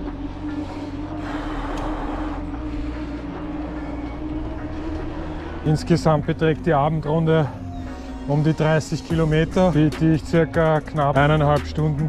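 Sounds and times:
bike tyres humming on asphalt: 0:00.0 - 0:08.5.

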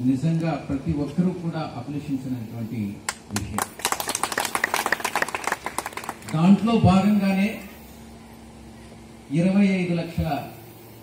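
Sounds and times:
small group clapping: 0:03.1 - 0:06.6.

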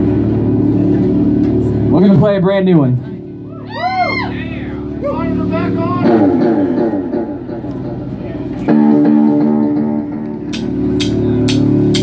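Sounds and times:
electric guitar and bass chord: 0:00.0 - 0:12.0
cymbal tapping: 0:09.5 - 0:12.0.

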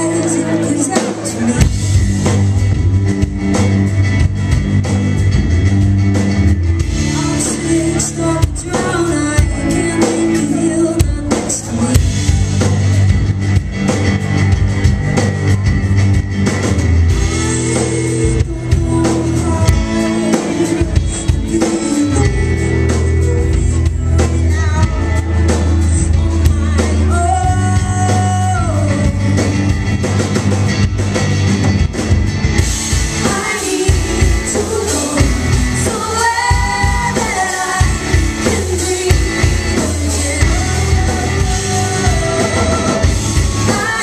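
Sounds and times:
woman singing lead: 0:00.0 - 0:04.2, 0:06.2 - 0:14.2, 0:17.1 - 0:30.1, 0:32.6 - 0:44.0
bass guitar: 0:00.0 - 0:44.0
drum kit beat: 0:00.0 - 0:44.0
electric guitars: 0:00.0 - 0:44.0
rock band playing: 0:00.0 - 0:44.0.

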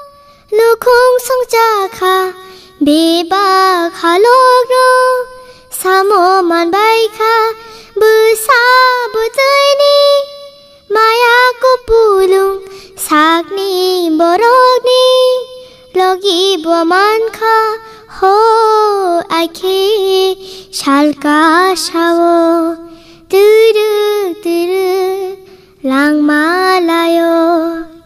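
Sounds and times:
child singing: 0:00.0 - 0:28.0.

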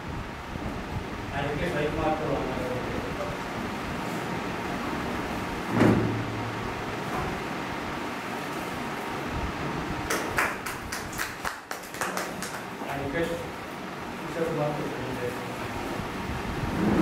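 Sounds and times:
steady background hum: 0:00.0 - 0:17.0
thump: 0:05.7 - 0:06.4.

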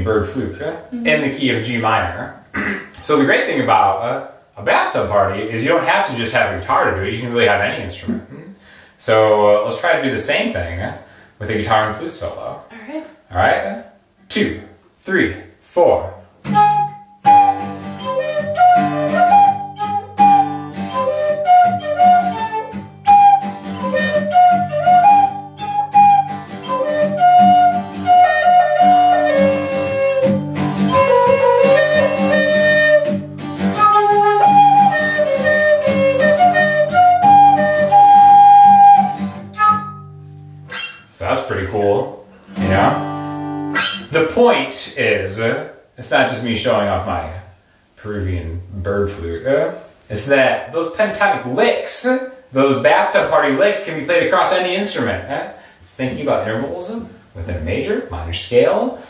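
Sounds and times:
acoustic guitar chords: 0:16.4 - 0:40.8, 0:42.3 - 0:44.2
wooden flute melody: 0:16.4 - 0:41.0, 0:42.6 - 0:44.1.

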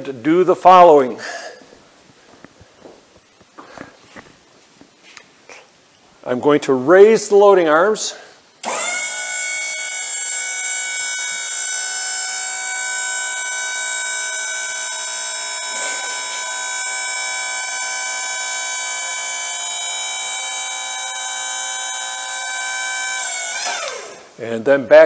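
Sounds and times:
hydraulic pump whining: 0:08.6 - 0:24.4.

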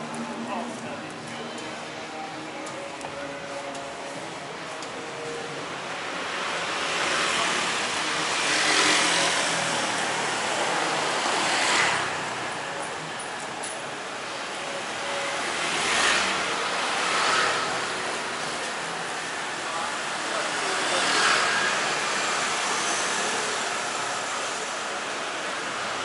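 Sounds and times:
cars passing: 0:05.1 - 0:26.0
motorbikes passing: 0:06.0 - 0:13.1, 0:15.4 - 0:26.0.

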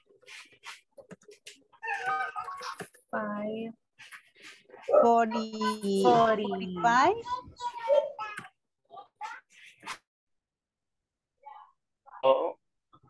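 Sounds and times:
voices talking: 0:04.8 - 0:08.6.

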